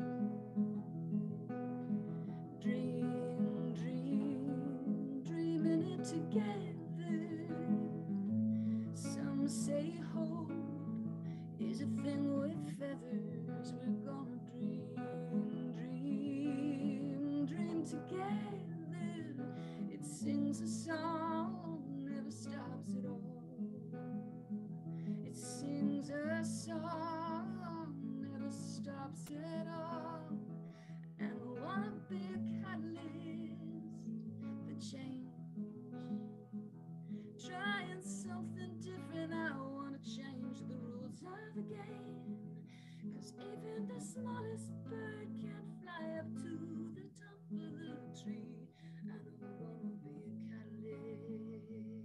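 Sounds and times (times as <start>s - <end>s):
acoustic guitar strumming: 0.0s - 42.6s
woman singing: 2.3s - 24.3s, 25.2s - 36.4s, 37.2s - 52.0s.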